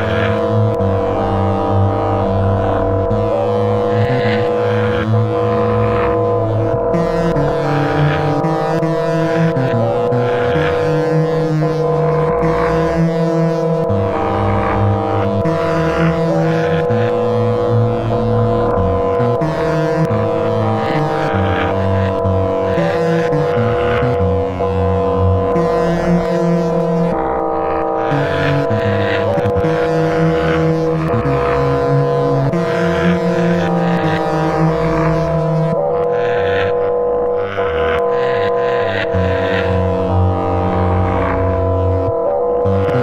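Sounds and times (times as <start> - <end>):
shifting low note: 0.0 - 43.0
sustained electronic drone: 0.0 - 43.0.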